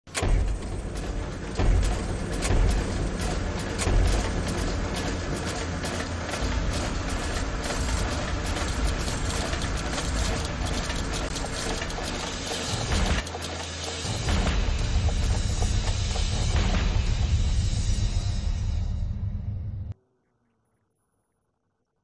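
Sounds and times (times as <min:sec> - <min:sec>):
mechanical clicks and ticks: 0:00.1 - 0:16.8
news theme music: 0:00.2 - 0:19.4.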